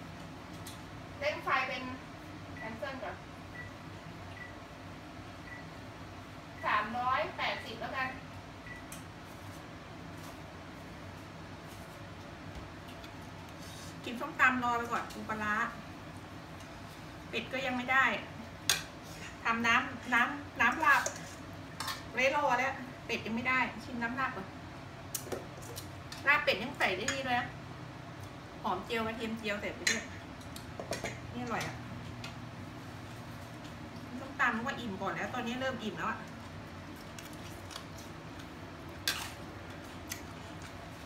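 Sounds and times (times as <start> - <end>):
woman speaking: 1.2 - 2.0, 2.6 - 3.2, 6.6 - 8.2, 14.0 - 15.8, 17.3 - 18.3, 19.4 - 21.2, 22.1 - 24.6, 26.2 - 27.6, 28.6 - 30.2, 31.3 - 31.9, 34.1 - 36.3
fork clicks and eating crunches: 36.9 - 40.8.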